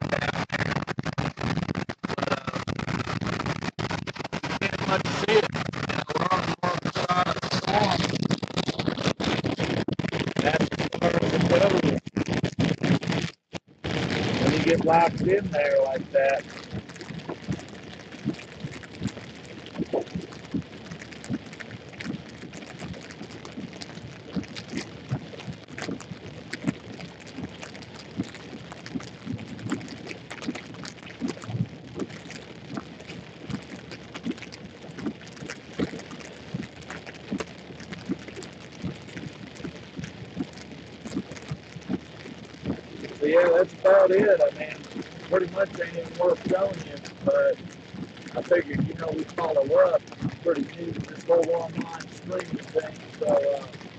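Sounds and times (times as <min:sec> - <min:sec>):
raindrops tapping on car windshield: 0:00.0 - 0:53.9.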